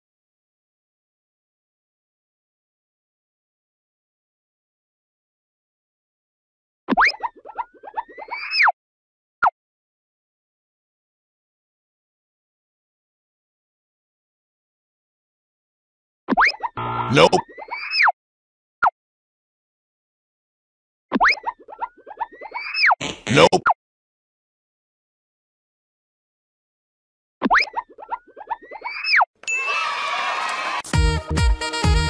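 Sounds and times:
rising whoop: 0:29.6 - 0:30.8.

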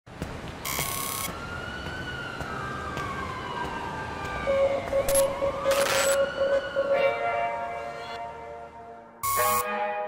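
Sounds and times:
siren wailing: 0:00.7 - 0:09.6.

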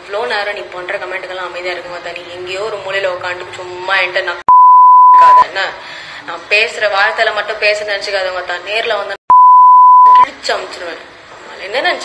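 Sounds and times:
steady single-tone censor beep: 0:04.5 - 0:05.4, 0:09.3 - 0:10.3.

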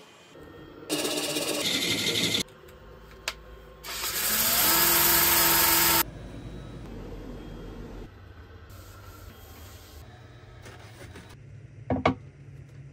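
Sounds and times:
power tool motor running: 0:03.8 - 0:06.0.

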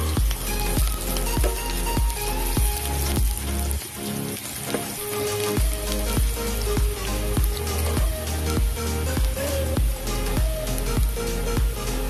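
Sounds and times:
background music with beat: 0:00.0 - 0:12.0
garlic and onion sizzling in oil: 0:00.0 - 0:12.0.

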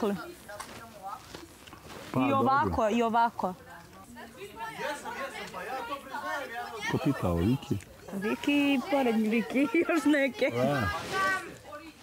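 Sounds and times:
group chatter: 0:00.0 - 0:12.0.

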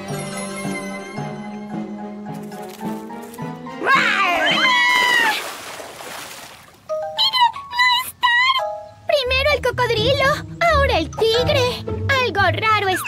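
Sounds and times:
background music: 0:00.0 - 0:05.1, 0:06.8 - 0:13.0.

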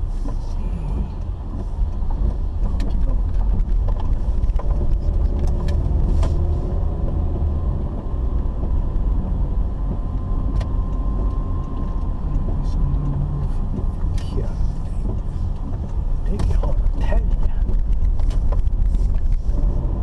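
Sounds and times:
engine and tyres rumbling: 0:00.0 - 0:20.0.

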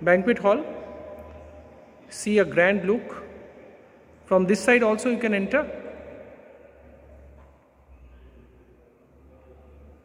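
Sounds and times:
echo of spoken words: 0:00.0 - 0:10.0
low steady hum: 0:00.0 - 0:10.0.

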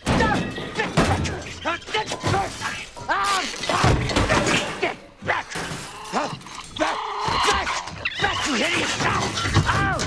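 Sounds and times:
things crashing and breaking: 0:00.0 - 0:04.8.

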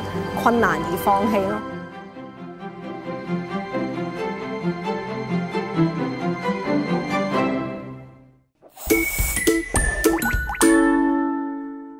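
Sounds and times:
music: 0:00.0 - 0:11.9.

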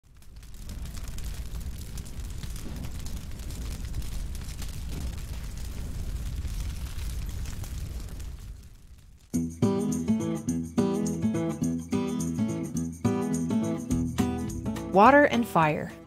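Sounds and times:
flames roaring: 0:00.0 - 0:09.4
fire crackling: 0:00.0 - 0:15.9.

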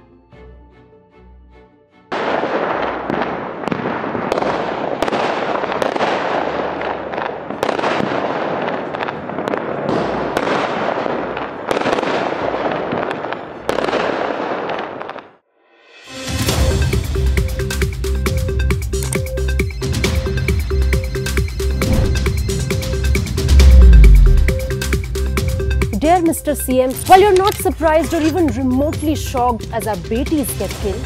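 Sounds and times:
fireworks crackling and banging: 0:02.2 - 0:15.4.

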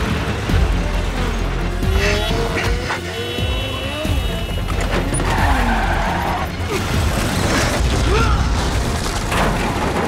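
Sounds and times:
car engines revving: 0:00.0 - 0:07.8
film music score: 0:00.0 - 0:10.0
tyres skidding: 0:00.0 - 0:10.0.

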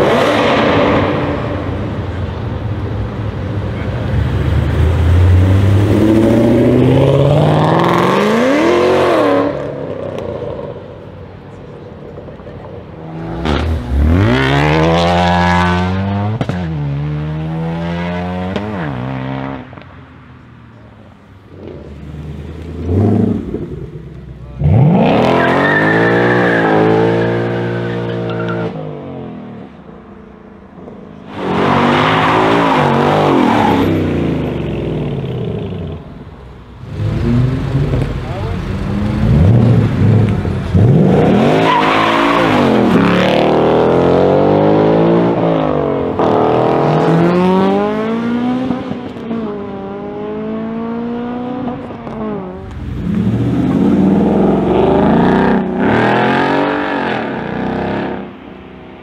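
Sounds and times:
cars accelerating hard past: 0:36.8 - 0:58.4.

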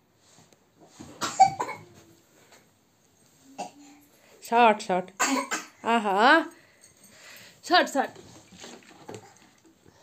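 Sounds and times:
person coughing: 0:01.2 - 0:01.9, 0:05.2 - 0:05.8.

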